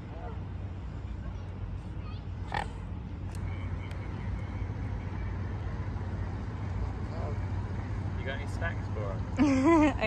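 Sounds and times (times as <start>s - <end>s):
distant engine hum: 0.0s - 10.0s.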